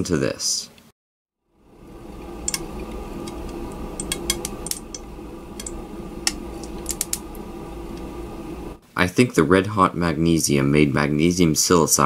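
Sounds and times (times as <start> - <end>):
steady low hum: 1.5 - 8.9.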